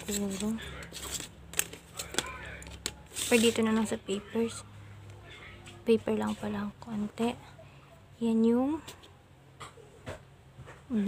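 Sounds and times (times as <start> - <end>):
faint murmur of voice: 4.1 - 5.9.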